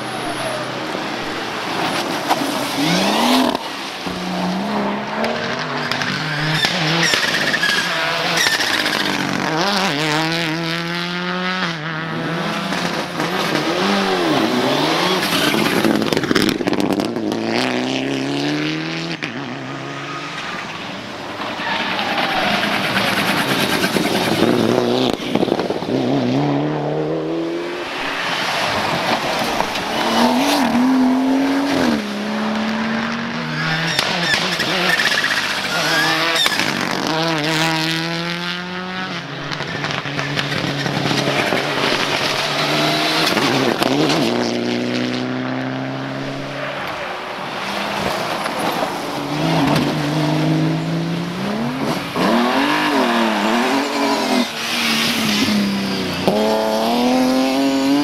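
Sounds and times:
rally cars accelerating past: 0.0 - 58.0.

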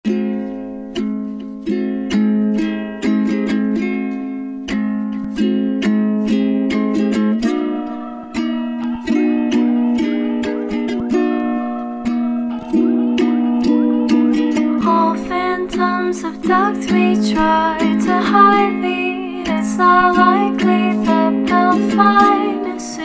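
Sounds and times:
ukulele chords strummed: 0.0 - 23.0.

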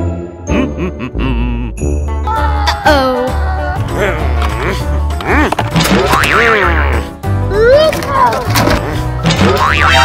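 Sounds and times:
bouncy background music: 0.0 - 10.0
cartoon boing sound effects: 9.4 - 10.0.

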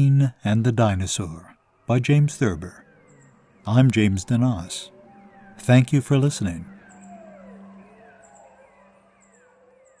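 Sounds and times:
creature calls gliding downward: 2.7 - 10.0.

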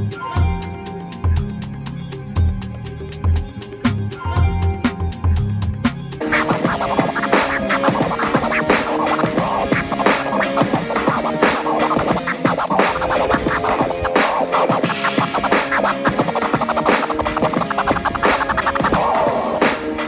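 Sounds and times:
record scratching: 6.2 - 20.0.

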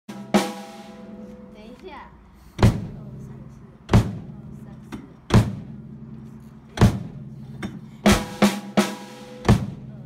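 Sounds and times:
drum kit hits: 0.1 - 1.5, 2.6 - 3.3, 3.9 - 6.1, 6.7 - 10.0
cymbal ringing: 0.1 - 1.6.

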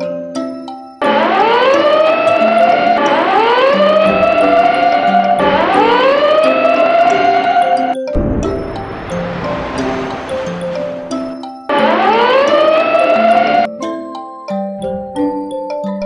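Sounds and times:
background music: 0.0 - 16.0
fire engine siren wailing: 1.0 - 13.7
mallet percussion notes: 2.4 - 16.0.

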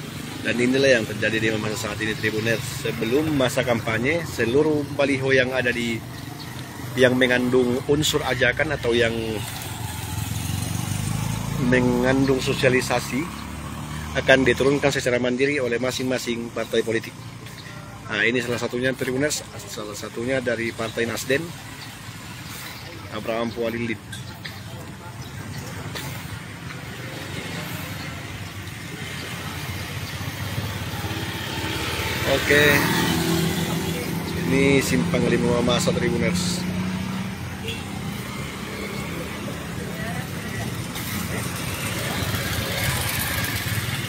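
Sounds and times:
motorcycle passing: 0.0 - 44.0
street traffic: 0.0 - 44.0.

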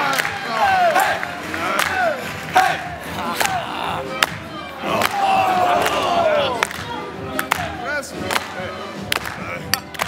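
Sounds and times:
sharp claps on the beat: 0.0 - 3.6, 4.2 - 5.2, 6.6 - 10.0
male chorus shouting and whooping: 0.0 - 4.2, 4.8 - 6.6
dance music: 0.0 - 10.0.

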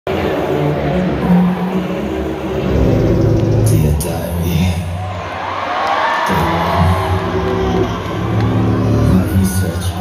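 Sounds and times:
low droning over a loudspeaker: 0.1 - 5.0.

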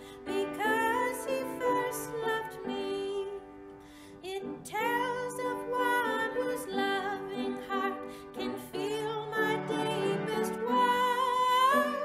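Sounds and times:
hymn singing: 0.0 - 12.0
musical accompaniment: 0.0 - 12.0.

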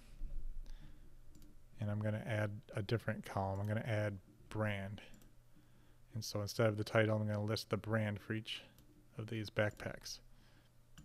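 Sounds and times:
computer mouse clicking: 1.3 - 1.6
person speaking: 1.8 - 5.3, 6.1 - 10.3.

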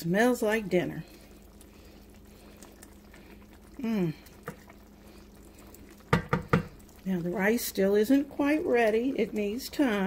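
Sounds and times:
food bubbling in pot: 0.0 - 10.0
wooden spoon stirring: 0.4 - 10.0.

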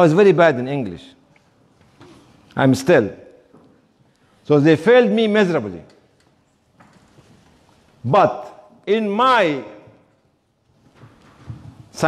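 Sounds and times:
soft clicks and knocks: 5.9 - 7.8.

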